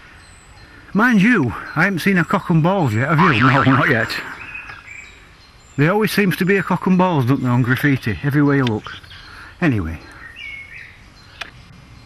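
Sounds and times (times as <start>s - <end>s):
woodland background noise: 0.0s - 12.0s.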